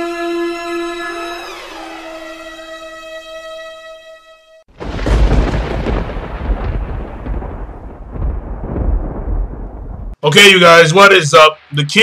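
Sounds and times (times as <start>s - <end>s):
rolling thunder rumble: 4.7s - 10.2s.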